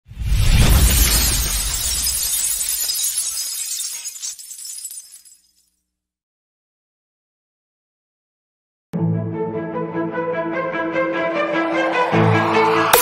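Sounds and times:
glass shattering: 0.5s - 5.8s
glass shards tinkling: 0.9s - 5.8s.

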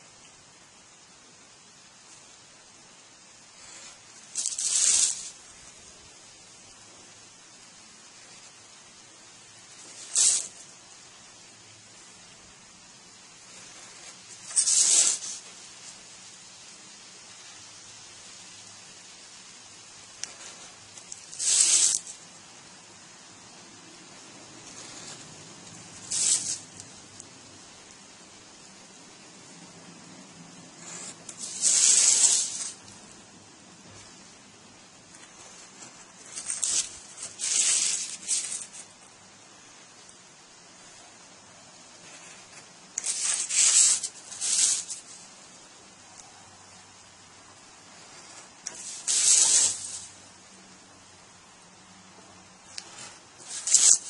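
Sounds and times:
knife cutting paper: 3.6s - 5.4s, 13.7s - 15.5s, 20.2s - 22.2s, 26.0s - 26.7s, 30.8s - 32.8s, 36.2s - 38.8s, 43.0s - 45.2s.

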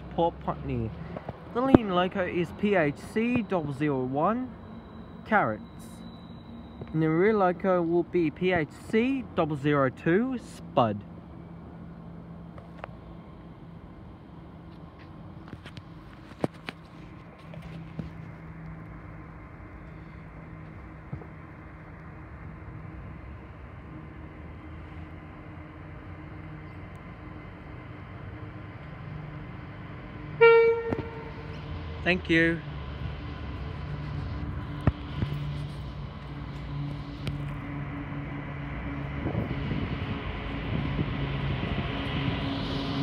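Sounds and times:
locomotive engine drone: 0.0s - 43.0s
loud train horn blast: 30.3s - 32.3s.

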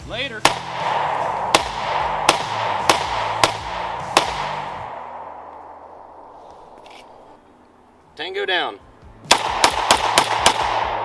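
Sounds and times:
pistol shots: 0.4s - 6.3s, 9.3s - 11.0s.

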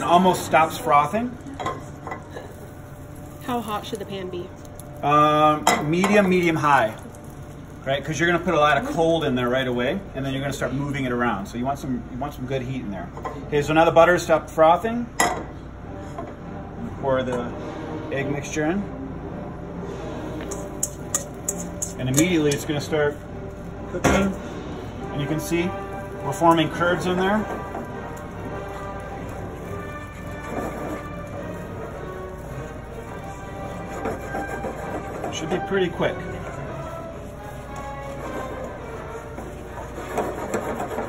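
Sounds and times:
eggs sizzling in a pan: 0.0s - 11.1s, 20.4s - 41.0s
low kitchen background noise: 0.0s - 41.0s
chopsticks stirring in a pan: 20.3s - 41.0s.

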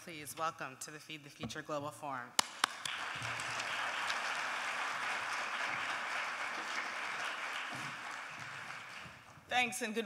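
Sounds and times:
audience applauding: 2.5s - 9.4s.

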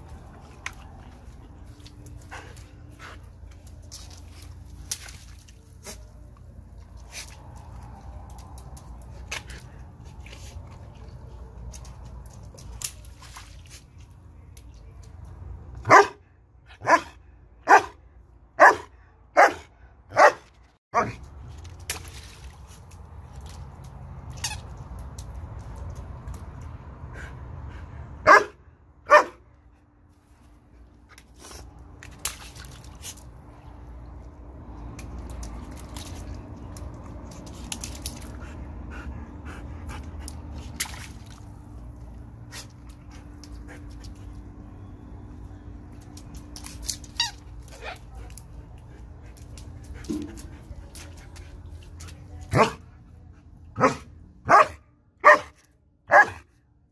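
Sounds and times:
dog barking: 15.8s - 16.2s, 16.8s - 18.0s, 18.6s - 20.4s, 28.2s - 29.4s, 52.5s - 52.8s, 53.8s - 55.5s, 56.1s - 56.4s.

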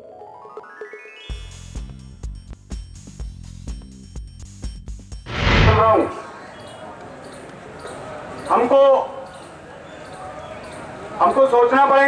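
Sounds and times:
man speaking over loudspeaker: 11.2s - 12.0s.

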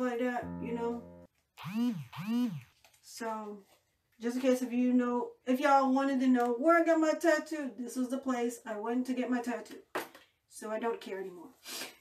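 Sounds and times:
person humming wordless sounds: 0.4s - 1.2s
steady held tone: 0.4s - 2.7s.

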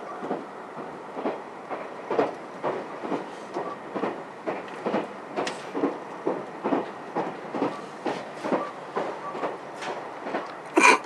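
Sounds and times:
train running noise: 0.0s - 11.0s
train wheels clacking over rail joints: 0.2s - 11.0s.

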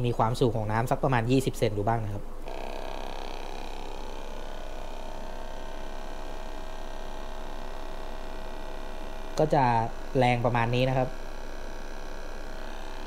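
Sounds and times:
aquarium air pump humming: 0.0s - 13.0s.

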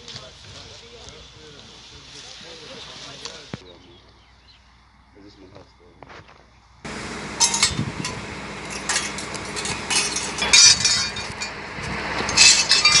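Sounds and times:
metal pieces clinking and scraping: 7.4s - 11.6s, 12.2s - 13.0s.

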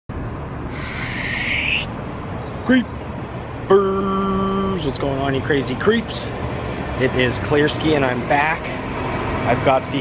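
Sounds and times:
traffic rumble: 0.1s - 10.0s
hiss: 0.7s - 1.9s.

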